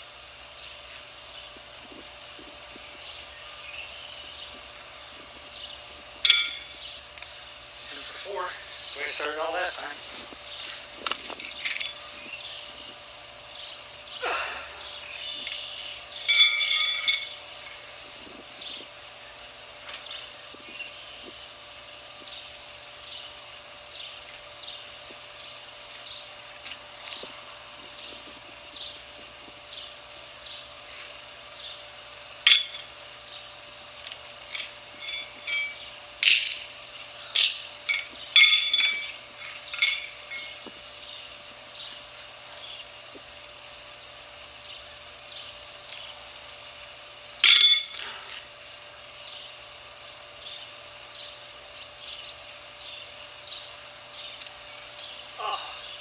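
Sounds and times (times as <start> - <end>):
horseshoes clanking on metal: 6.2 - 6.8, 16.2 - 17.8, 32.4 - 32.9, 34.5 - 36.7, 37.3 - 40.8, 47.4 - 48.2.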